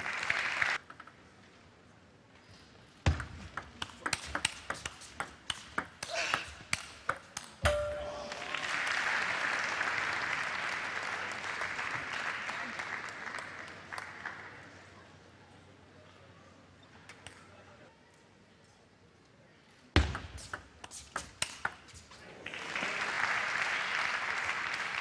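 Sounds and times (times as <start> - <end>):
crowd applause: 0.0 - 0.8, 8.1 - 14.8, 22.2 - 25.0.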